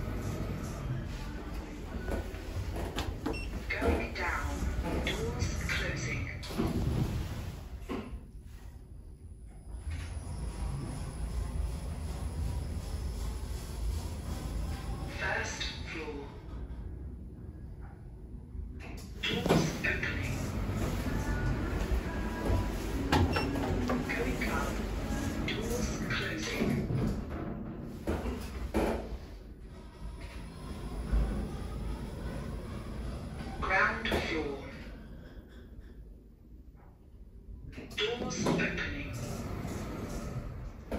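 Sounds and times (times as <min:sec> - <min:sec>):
lift car rumble: 0:09.6 - 0:18.0, 0:18.9 - 0:36.1, 0:37.7 - 0:40.9.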